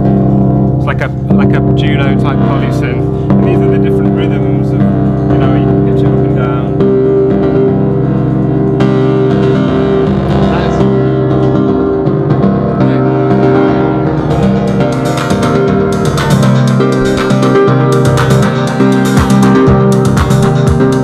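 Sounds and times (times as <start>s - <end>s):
electronic beat and bass: 0.0s - 21.0s
sequenced synth line: 0.0s - 21.0s.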